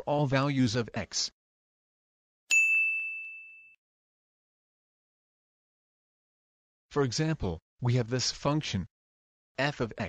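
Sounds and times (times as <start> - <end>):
ding sound effect: 2.5 - 3.8.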